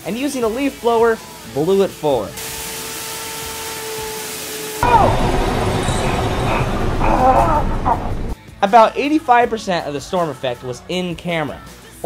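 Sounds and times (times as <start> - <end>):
leaf blower running: 2.4 - 8.4.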